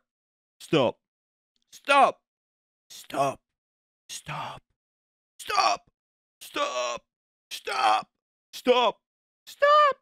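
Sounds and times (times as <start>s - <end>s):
person shouting: 9.5s - 10.0s.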